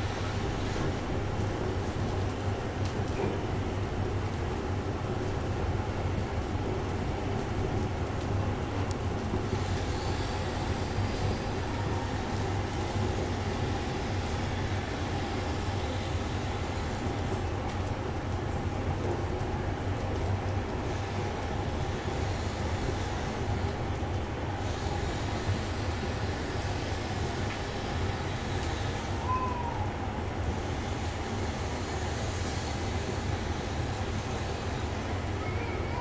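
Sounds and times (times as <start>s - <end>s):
faint crackles: 0.0s - 36.0s
flames rumbling: 0.0s - 36.0s.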